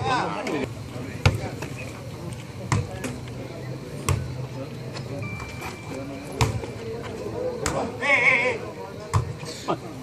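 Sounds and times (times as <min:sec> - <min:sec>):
crowd chatter: 0:00.0 - 0:10.0
football thuds: 0:02.6 - 0:03.2, 0:06.4 - 0:06.8, 0:09.1 - 0:09.4.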